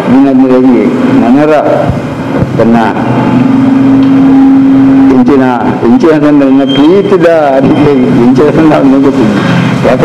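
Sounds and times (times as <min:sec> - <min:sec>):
man speaking: 0:00.0 - 0:03.1, 0:05.0 - 0:10.0.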